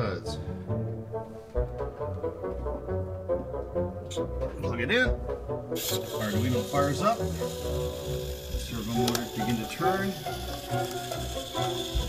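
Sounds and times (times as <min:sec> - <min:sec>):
servo motors whirring: 0:05.8 - 0:12.0.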